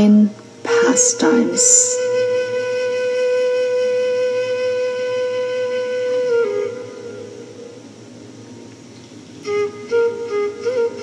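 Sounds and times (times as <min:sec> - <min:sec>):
flute holding long note: 0:00.7 - 0:08.0, 0:09.4 - 0:11.0.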